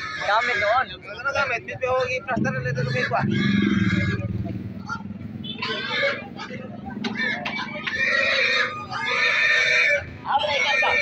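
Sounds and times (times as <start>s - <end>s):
pig squealing: 0.0s - 1.3s, 2.4s - 5.0s, 5.6s - 11.0s.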